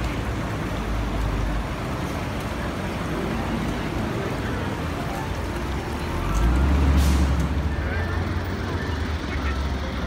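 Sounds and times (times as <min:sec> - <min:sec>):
city street traffic: 0:00.0 - 0:10.0
large vehicle engine rumbling: 0:00.0 - 0:10.0.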